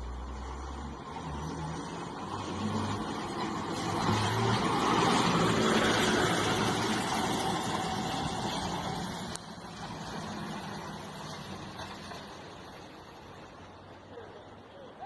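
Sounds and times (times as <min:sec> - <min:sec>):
truck passing on dirt road: 0:00.0 - 0:15.0.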